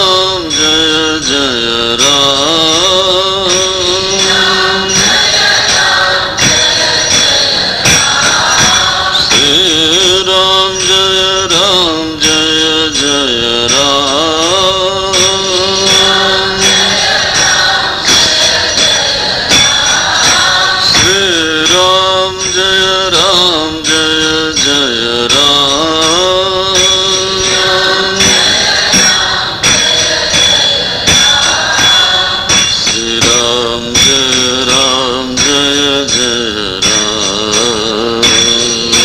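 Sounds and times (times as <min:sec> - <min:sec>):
jingling percussion: 0:00.0 - 0:39.0
person chanting: 0:00.0 - 0:39.0.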